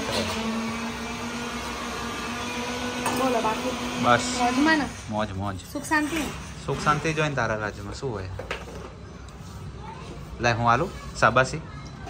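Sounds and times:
small motor humming: 0.0 - 5.1.

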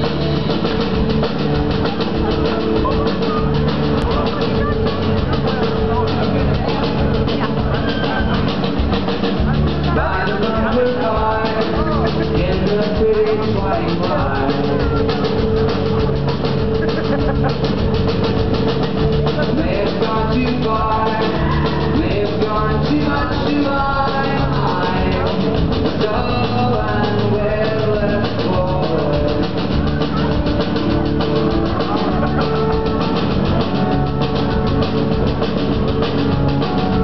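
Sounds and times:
acoustic guitar: 0.0 - 37.0
drum cymbal beat: 0.0 - 37.0
keyboard: 0.0 - 37.0
live rock band playing: 0.0 - 37.0
upright bass: 0.0 - 37.0.

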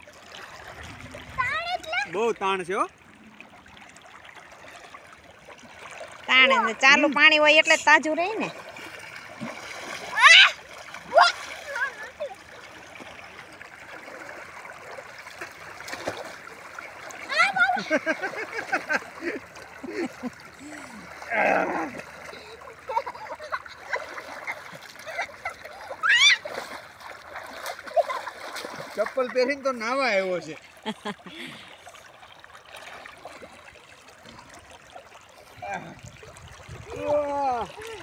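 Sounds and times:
people splashing in water: 0.0 - 38.0
river current rushing: 5.6 - 13.2
people shouting: 10.1 - 11.4, 26.0 - 26.5.

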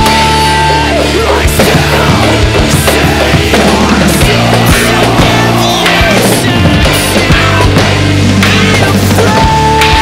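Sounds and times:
drum kit playing: 0.0 - 10.0
heavy rock music: 0.0 - 10.0.

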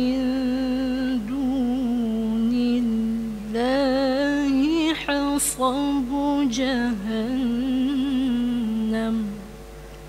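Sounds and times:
woman melodic recitation: 0.0 - 9.5.

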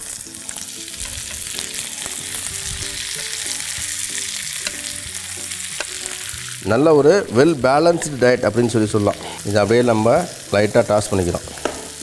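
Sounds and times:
butter and garlic sizzling in pan: 0.0 - 12.0.

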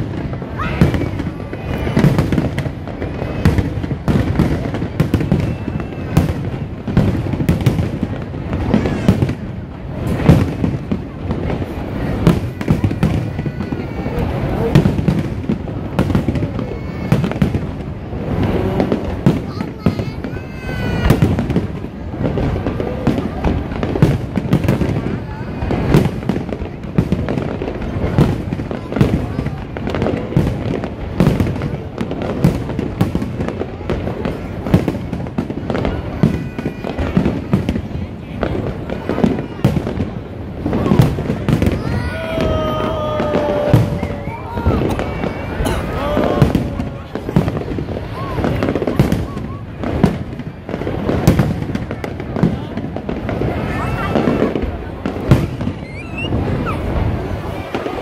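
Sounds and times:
booming: 0.0 - 58.0.

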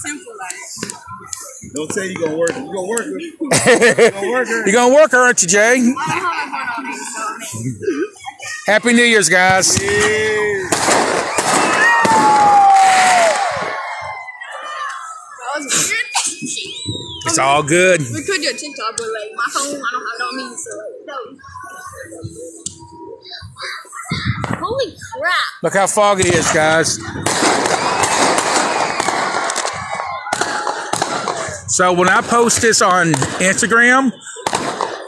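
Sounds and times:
fireworks bursting: 9.4 - 13.8, 26.0 - 35.0
falling whistle of fireworks: 10.7 - 14.2, 27.2 - 31.6.

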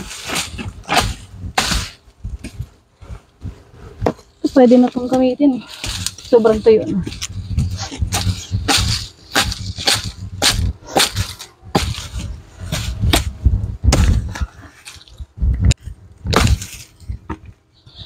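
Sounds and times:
dry palm fronds crackling: 0.0 - 2.0, 4.4 - 13.0.

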